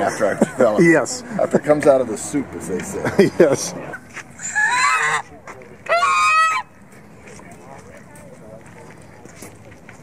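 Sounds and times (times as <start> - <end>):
goose honking: 4.4 - 5.3, 5.9 - 6.7.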